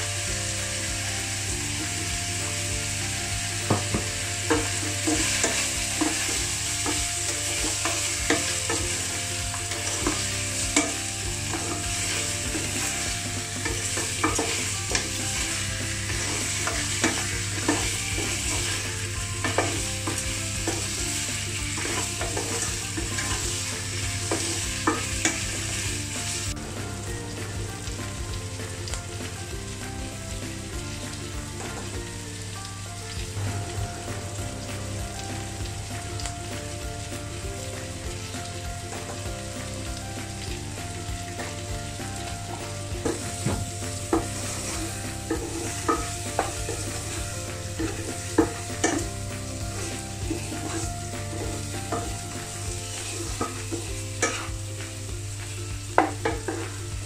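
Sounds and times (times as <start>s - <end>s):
chicken and onions sizzling in pan: 0.0s - 57.0s
wooden spatula scraping a pan: 1.4s - 27.0s, 42.0s - 55.0s.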